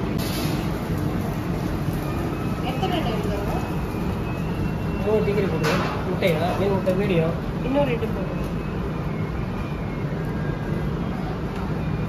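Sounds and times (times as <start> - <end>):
kitchen hum and rumble: 0.0 - 12.0.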